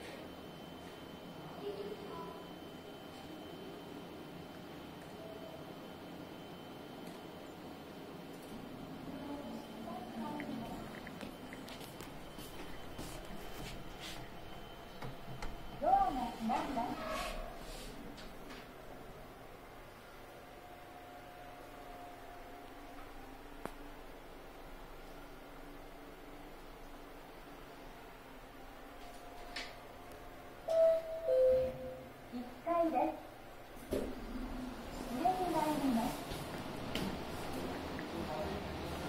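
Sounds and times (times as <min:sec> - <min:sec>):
recorded woman's voice guidance: 0:15.8 - 0:17.1, 0:35.1 - 0:36.3
two-tone descending elevator chime: 0:30.7 - 0:32.1.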